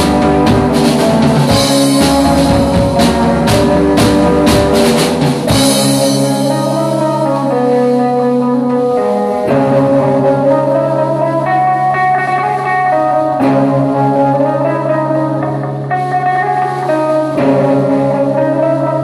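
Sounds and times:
drum kit: 0:00.0 - 0:19.0
electric guitars: 0:00.0 - 0:19.0.

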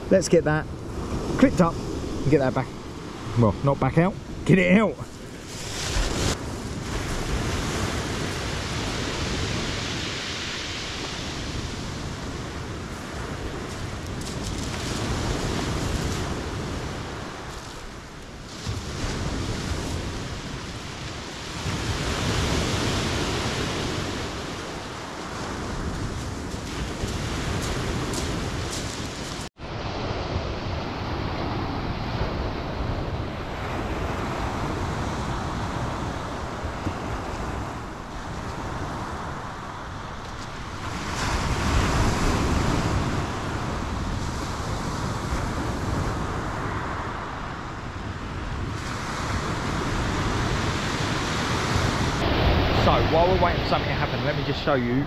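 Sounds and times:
waves breaking on shingle beach: 0:00.0 - 0:55.0.

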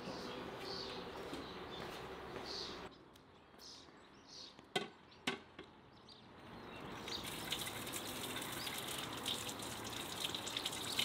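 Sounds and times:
tap water running and splashing: 0:07.1 - 0:11.0.

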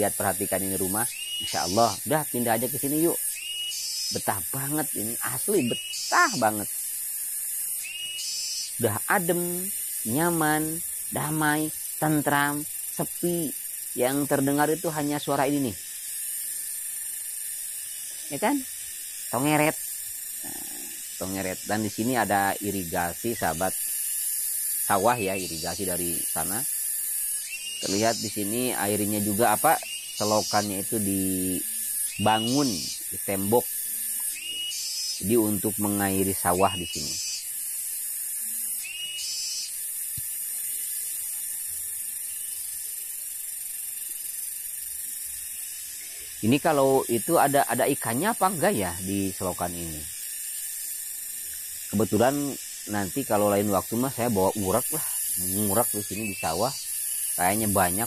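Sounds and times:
cicadas buzzing: 0:00.0 - 0:58.0.

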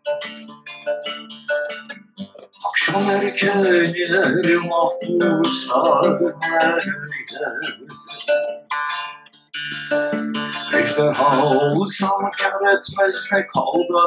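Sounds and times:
acoustic guitar: 0:00.0 - 0:14.0
man singing with vibrato: 0:02.6 - 0:08.5, 0:10.6 - 0:14.0.

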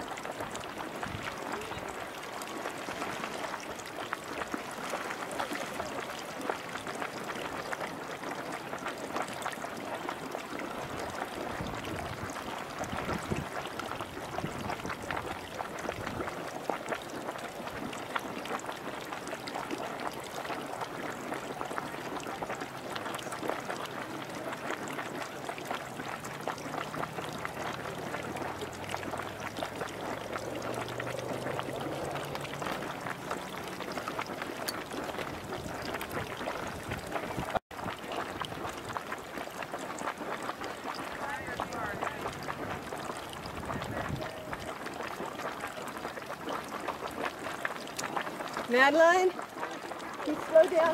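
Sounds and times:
hot spring water splashing and gurgling: 0:00.0 - 0:50.9.

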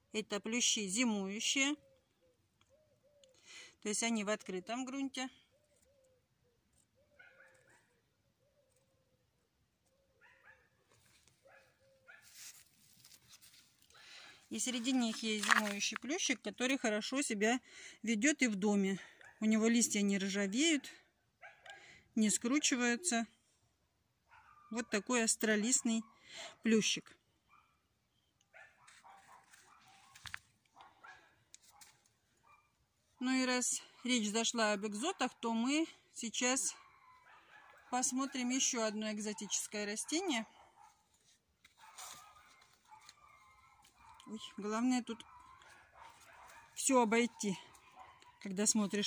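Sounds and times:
distant dog barking: 0:07.1 - 0:08.1, 0:10.1 - 0:10.8, 0:11.4 - 0:12.3, 0:24.3 - 0:24.8, 0:28.5 - 0:32.8, 0:36.8 - 0:41.1, 0:41.8 - 0:48.5.

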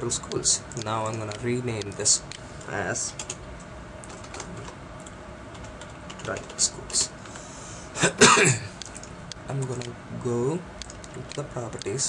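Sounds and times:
low background hum: 0:00.0 - 0:12.0
computer keyboard keystrokes: 0:00.7 - 0:02.4, 0:04.0 - 0:07.0, 0:10.8 - 0:12.0.

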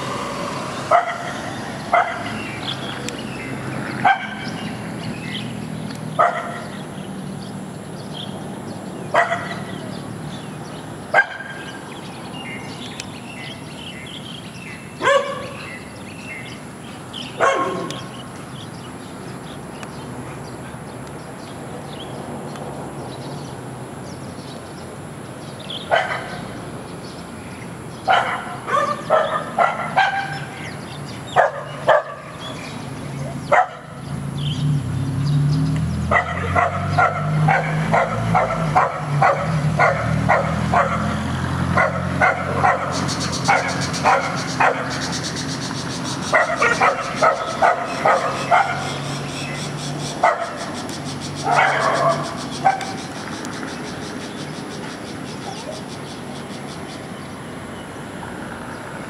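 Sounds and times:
dog barking: 0:00.9 - 0:02.4, 0:04.0 - 0:04.6, 0:06.2 - 0:06.8, 0:09.1 - 0:09.8, 0:11.1 - 0:11.8, 0:15.0 - 0:15.6, 0:17.4 - 0:18.1, 0:25.9 - 0:26.5, 0:28.1 - 0:30.6, 0:31.4 - 0:32.4, 0:33.4 - 0:34.0, 0:36.1 - 0:45.0, 0:46.3 - 0:49.0, 0:50.2 - 0:50.8, 0:51.4 - 0:53.0.

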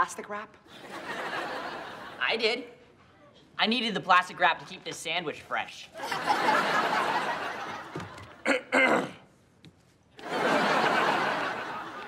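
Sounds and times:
person clearing throat: 0:08.4 - 0:09.3.

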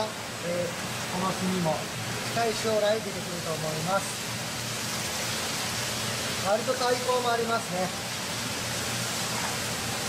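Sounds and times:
water rushing: 0:00.0 - 0:10.0.

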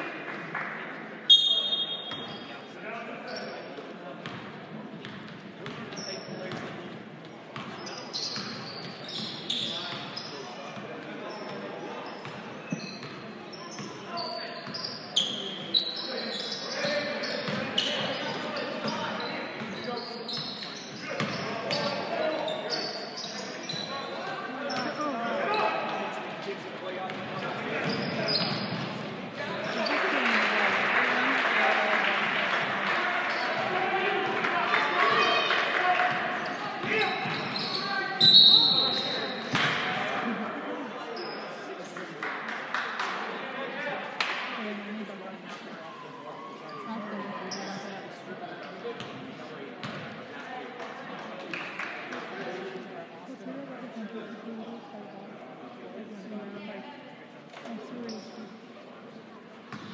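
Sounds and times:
crowd noise: 0:00.0 - 0:59.9
voices echoing in a gym: 0:00.0 - 0:59.9
sneakers squeaking on hardwood: 0:07.6 - 0:10.3, 0:11.3 - 0:24.1, 0:27.8 - 0:29.0, 0:36.4 - 0:39.5
short whistle: 0:38.3 - 0:39.1.

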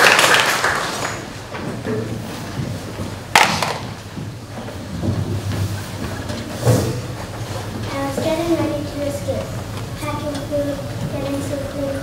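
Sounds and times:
waiting audience hall noise: 0:00.0 - 0:12.0
sharp knocks: 0:03.3 - 0:04.1.

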